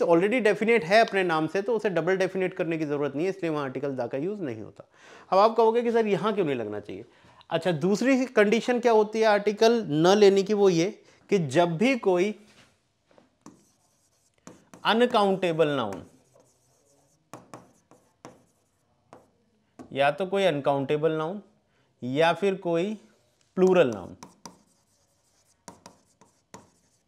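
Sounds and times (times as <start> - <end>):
stylus tapping on screen: 13.4 - 15.1, 17.3 - 20.0, 23.6 - 26.9
stylus scratching on screen: 13.4 - 19.4, 23.0 - 27.0.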